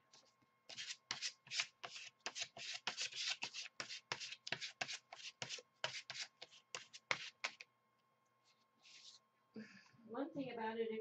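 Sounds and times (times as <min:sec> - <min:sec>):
plastic card scraping paint on paper: 0:00.7 - 0:07.6.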